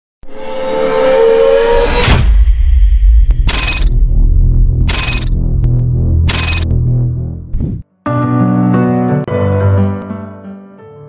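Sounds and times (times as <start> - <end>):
deep bass: 2.2 - 7.8
held tone: 3.5 - 4.0, 4.9 - 5.4, 6.3 - 6.7.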